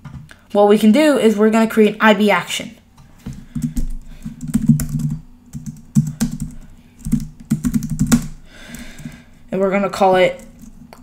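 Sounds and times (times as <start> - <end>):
typing on computer keyboard: 3.5 - 9.1, 10.4 - 11.0.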